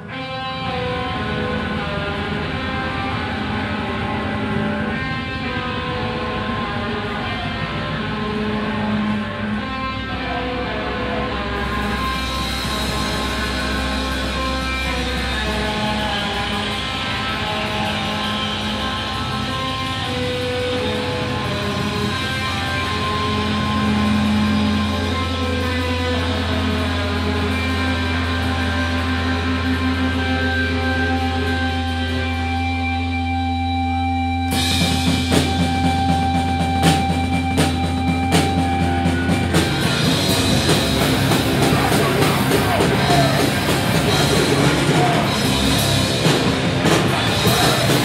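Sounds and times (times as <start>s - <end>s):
drum kit: 0.0s - 48.0s
electric guitar: 0.0s - 48.0s
steady low drone: 0.0s - 48.0s.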